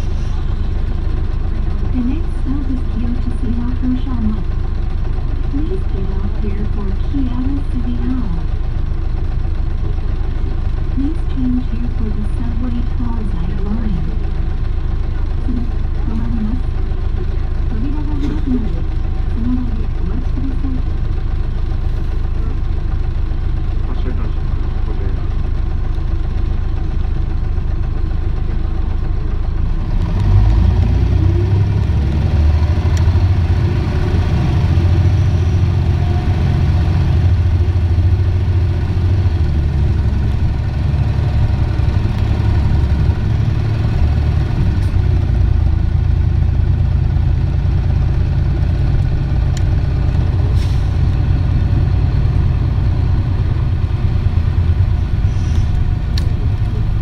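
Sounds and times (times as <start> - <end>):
bus diesel engine: 0.0 - 57.0.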